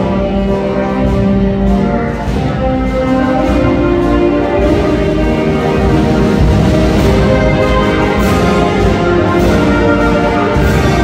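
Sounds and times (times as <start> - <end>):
band playing long held chords: 0.0 - 11.0.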